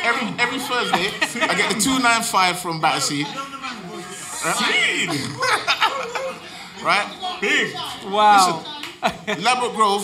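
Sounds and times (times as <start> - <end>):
men speaking: 0.0 - 10.0
men laughing: 0.4 - 2.0, 4.6 - 6.6.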